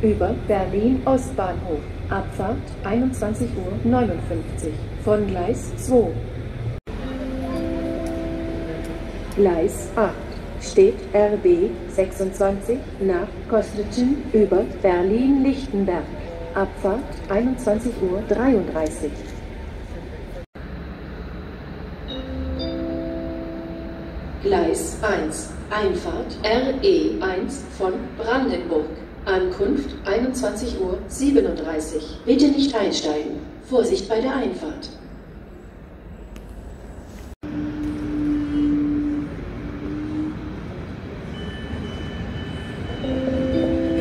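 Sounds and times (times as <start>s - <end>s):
train rumbling: 0.0s - 33.8s, 34.9s - 44.0s
two-note electronic chime: 6.9s - 9.3s, 22.1s - 24.4s.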